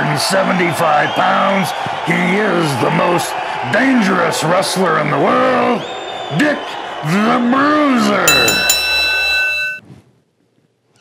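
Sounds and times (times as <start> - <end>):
bell ringing: 8.3 - 9.8.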